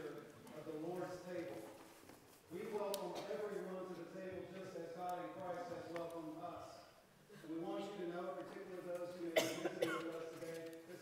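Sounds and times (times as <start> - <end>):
person coughing: 9.4 - 10.2.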